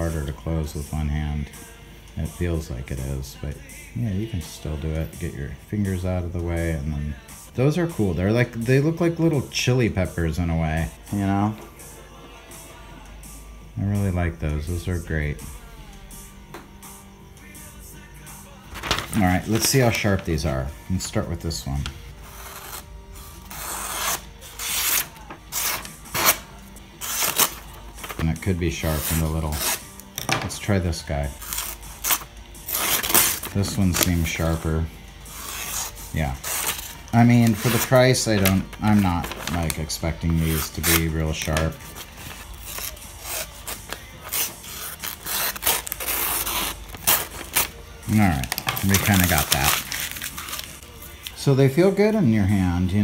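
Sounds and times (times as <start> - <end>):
paper rustling: 18.7 - 20.5, 27.0 - 30.7, 35.4 - 50.8
knife slicing paper: 22.2 - 30.2, 31.3 - 34.6, 35.3 - 47.8, 48.4 - 50.8.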